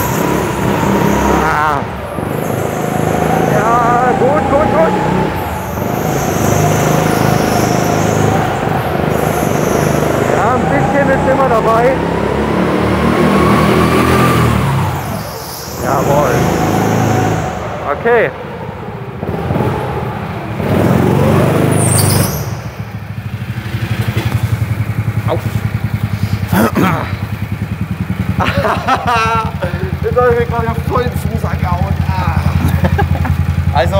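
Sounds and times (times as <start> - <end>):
go-kart engine running: 0.0 - 33.9.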